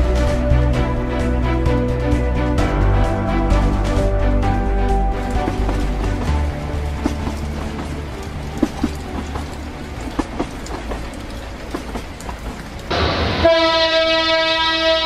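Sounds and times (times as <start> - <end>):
passenger train rumbling: 0.0 - 15.0
wheels clacking over rail joints: 3.4 - 13.8
locomotive horn blast: 12.9 - 15.0.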